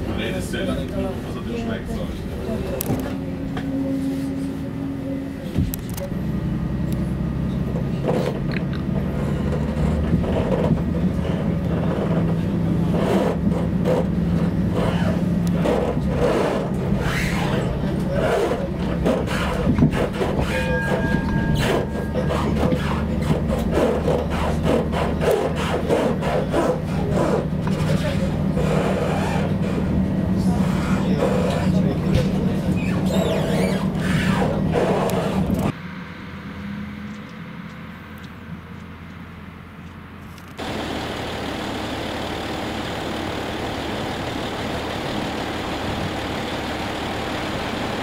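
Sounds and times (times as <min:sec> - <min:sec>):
train carriage hum and rumble: 0:00.0 - 0:48.0
wheels clattering over rail joints: 0:07.5 - 0:35.7
brief high tone: 0:20.4 - 0:22.5.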